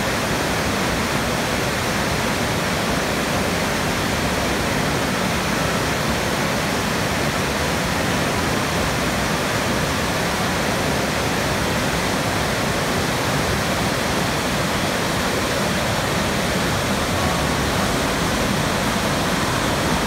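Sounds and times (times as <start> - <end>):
stream rushing over boulders: 0.0 - 20.0.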